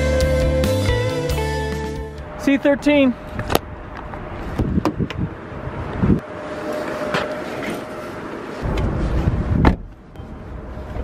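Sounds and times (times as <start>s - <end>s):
car door shutting: 9.5s - 9.9s.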